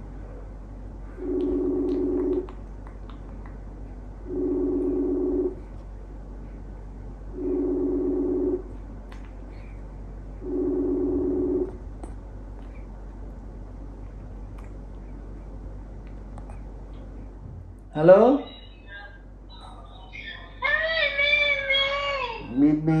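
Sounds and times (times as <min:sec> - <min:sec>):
phone ringback tone: 0:01.2 - 0:02.4, 0:04.3 - 0:05.6, 0:07.4 - 0:08.6, 0:10.4 - 0:11.7.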